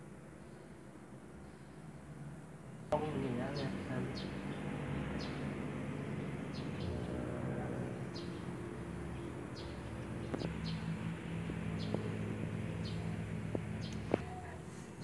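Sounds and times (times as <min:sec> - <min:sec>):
small birds chirping: 0:02.9 - 0:15.0.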